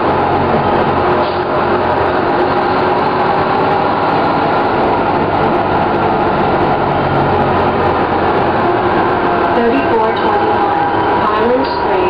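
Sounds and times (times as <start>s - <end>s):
bus diesel engine running: 0.0s - 12.0s.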